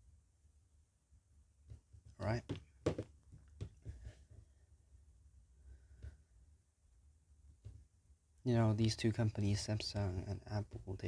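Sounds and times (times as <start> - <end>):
phones tapping on table: 2.4 - 4.0.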